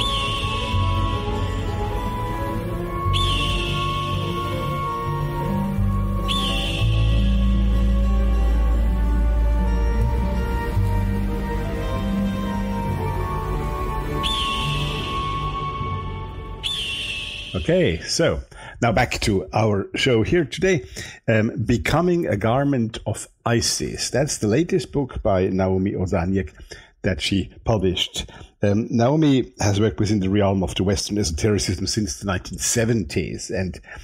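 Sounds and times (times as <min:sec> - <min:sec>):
high whistling swoop: 0:00.0 - 0:08.4, 0:12.9 - 0:18.1
high held tone bending upward: 0:00.0 - 0:18.1
radio jingle synth music: 0:00.0 - 0:18.1
radio jingle low tones: 0:17.3 - 0:18.1.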